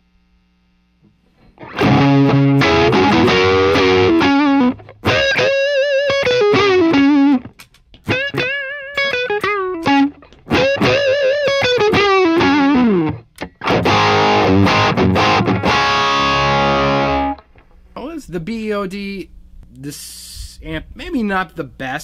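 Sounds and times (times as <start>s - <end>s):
distorted electric guitar lead: 1.4s - 17.6s
distorted guitar chord ringing: 1.6s - 7.4s, 8.1s - 17.5s.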